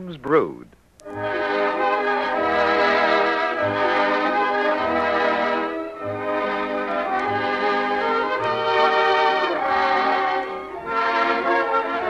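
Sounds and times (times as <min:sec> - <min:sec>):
orchestral music strings and brass: 0:01.1 - 0:12.0.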